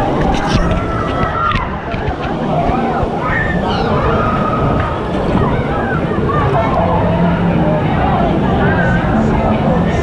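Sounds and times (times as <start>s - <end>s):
people's voices: 0.0s - 10.0s.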